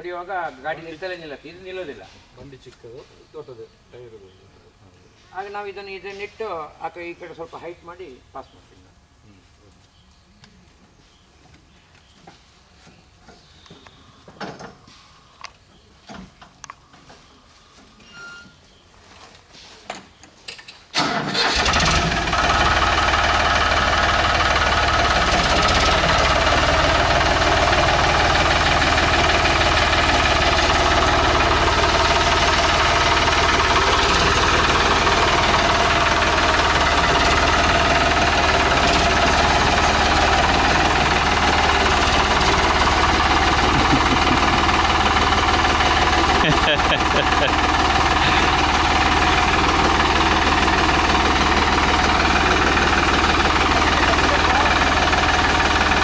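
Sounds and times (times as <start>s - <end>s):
tractor diesel engine running: 21.0s - 56.0s.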